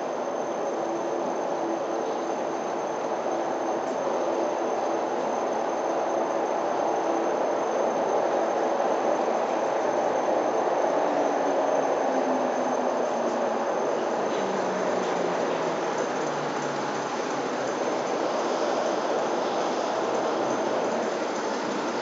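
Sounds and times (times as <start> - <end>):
lift running rumble: 3.4 - 22.0.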